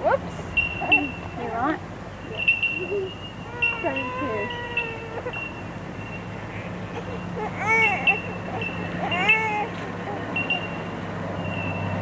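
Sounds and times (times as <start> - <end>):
baby squealing: 3.5 - 5.6, 6.9 - 10.6.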